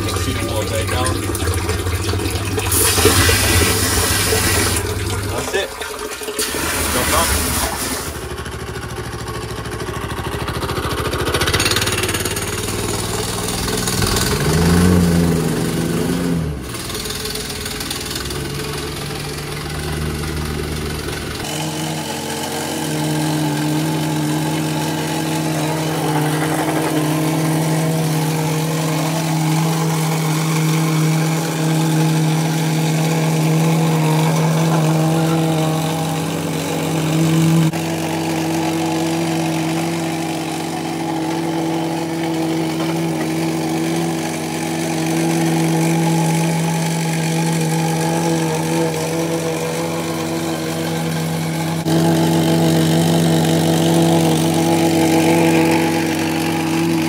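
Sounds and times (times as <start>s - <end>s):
plate compactor engine running: 0.0s - 57.0s.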